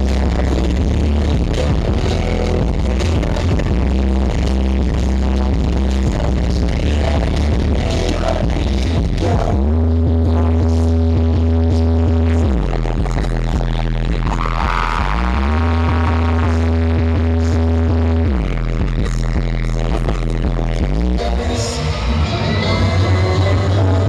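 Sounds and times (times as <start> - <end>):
deep sliding bass note: 0.0 - 24.0
electronic dance music over speakers: 0.0 - 24.0.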